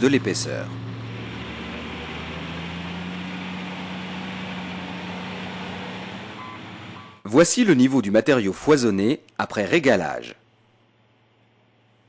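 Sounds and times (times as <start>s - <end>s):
heavy machinery engine hum: 0.0s - 7.3s.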